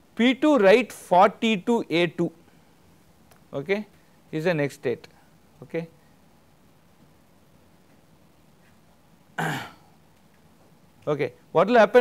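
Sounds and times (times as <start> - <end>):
man coughing: 9.4 - 9.9.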